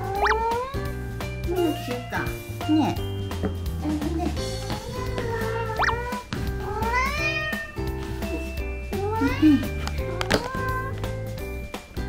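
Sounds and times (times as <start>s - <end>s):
cat meowing: 0.0s - 1.0s, 4.8s - 7.9s, 8.9s - 11.0s
background music: 0.0s - 12.0s.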